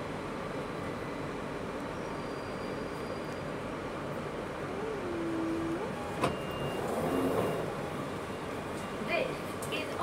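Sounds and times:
short high door beeps: 0:05.9 - 0:07.7.

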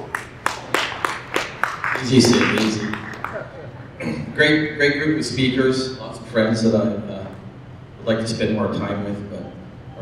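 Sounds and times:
scattered hand claps: 0:00.0 - 0:03.4.

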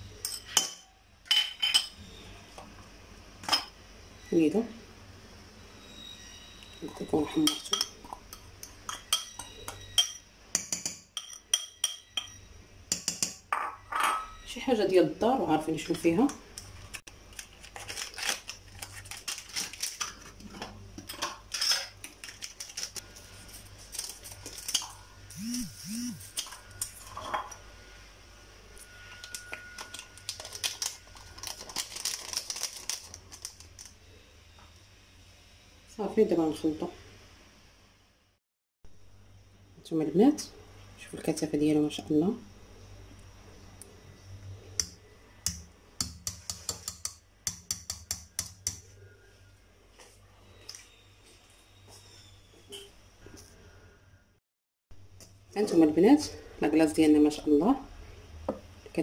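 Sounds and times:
spoon clinking against metal bowl: 0:00.2 - 0:02.0, 0:06.8 - 0:14.4.

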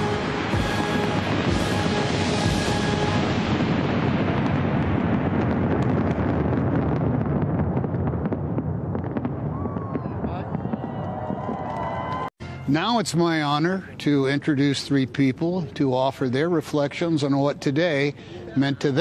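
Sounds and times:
background music: 0:00.0 - 0:03.8, 0:12.4 - 0:14.4
firework crackles: 0:00.0 - 0:12.3
fireworks bursting: 0:00.0 - 0:14.2.

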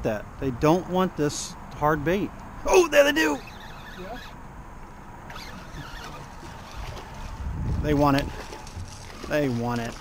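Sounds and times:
wind and water noise: 0:00.0 - 0:10.0
wind buffeting on microphone: 0:05.4 - 0:09.3.

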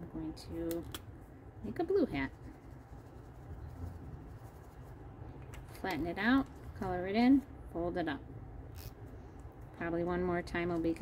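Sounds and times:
marker scribbling on clay: 0:01.8 - 0:05.1.

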